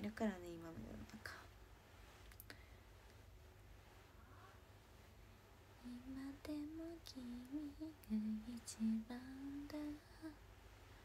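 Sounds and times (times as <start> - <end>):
woman singing softly: 5.8 - 11.0.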